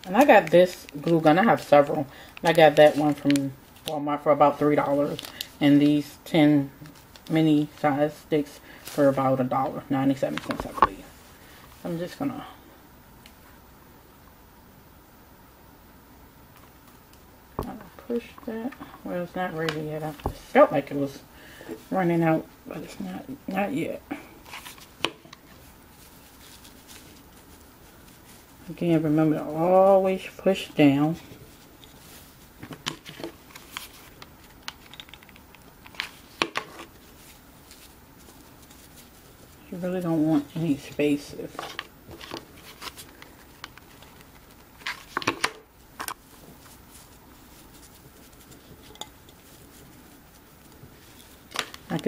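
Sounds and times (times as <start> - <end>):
handling knocks and rustles: 8.8 - 12.2, 17.6 - 22.1, 30.8 - 52.0.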